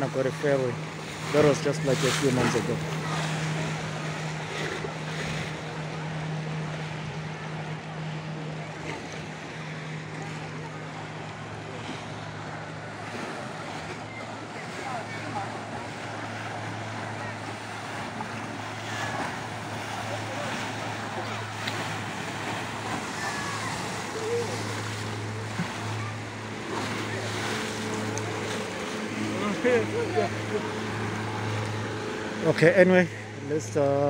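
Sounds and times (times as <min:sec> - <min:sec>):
boat wake rushing on water: 0:00.0 - 0:34.0
motorboat engines humming: 0:00.0 - 0:34.0.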